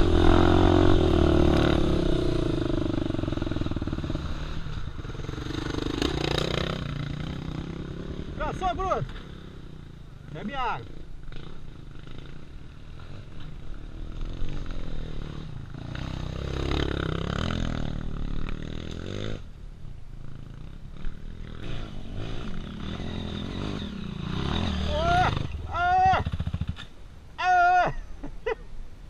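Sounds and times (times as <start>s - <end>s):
dirt bike engines idling: 0.0s - 29.0s.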